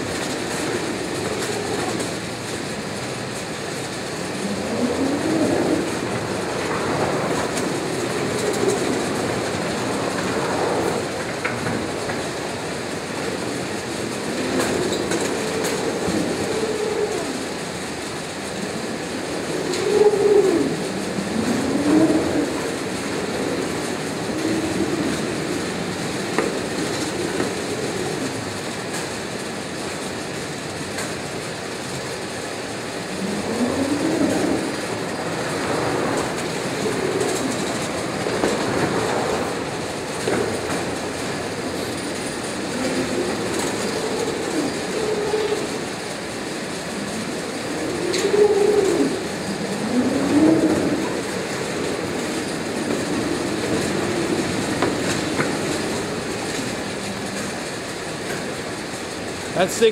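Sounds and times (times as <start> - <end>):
cartons rolling on rollers: 0.0 - 59.9
roller conveyor running: 0.0 - 59.9.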